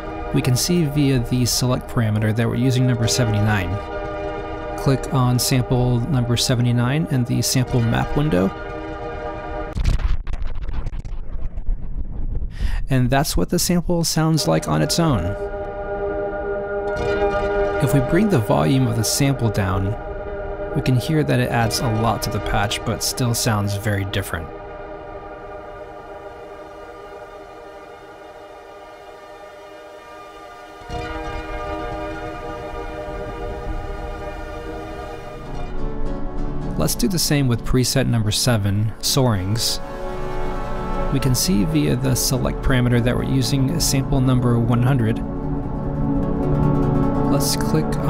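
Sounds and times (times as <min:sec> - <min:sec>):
synthesizer drone: 0:00.0 - 0:11.2, 0:14.2 - 0:37.2, 0:39.2 - 0:48.0
low rumble: 0:00.0 - 0:13.2, 0:14.2 - 0:38.0
dense crackling clicks: 0:07.7 - 0:12.6, 0:21.6 - 0:37.0, 0:43.4 - 0:48.0.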